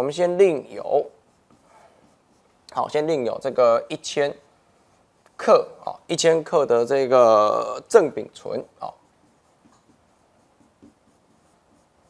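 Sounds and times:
pen scratching on screen: 0.2 - 3.9, 4.8 - 6.0, 7.5 - 12.0
pen tapping on screen: 9.6 - 10.0, 10.6 - 11.1.

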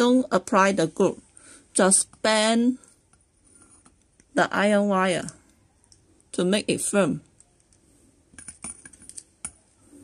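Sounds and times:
wires clicking as bent by hand: 7.2 - 9.7.

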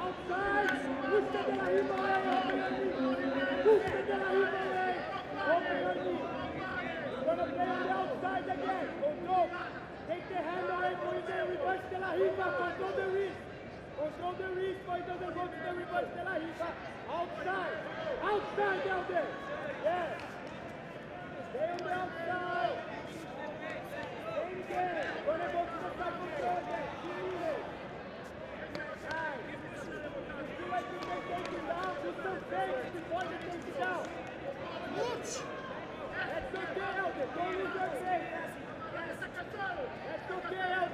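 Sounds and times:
crowd shouting and talking: 0.0 - 40.9.

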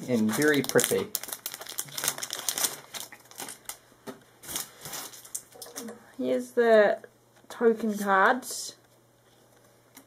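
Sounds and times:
foil wrapper crinkling: 0.1 - 3.8, 4.4 - 5.6.

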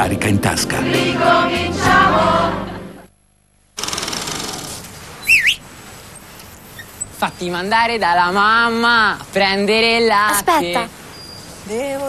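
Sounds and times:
light background noise: 2.9 - 12.0
loud whistle dipping and rising: 5.2 - 5.6.

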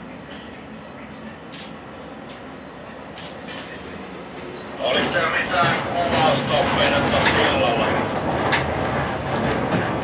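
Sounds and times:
diesel railcar running: 0.0 - 10.0.

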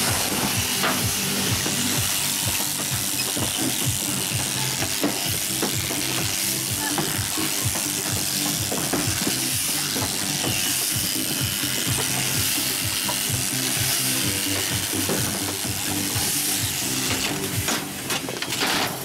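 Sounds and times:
electric shears buzzing: 0.0 - 19.0
shear cutter clicking: 0.0 - 19.0.

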